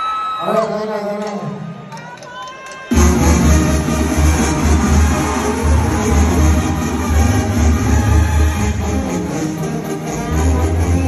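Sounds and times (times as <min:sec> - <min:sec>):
loud music with pulsing bass: 0:02.9 - 0:11.0.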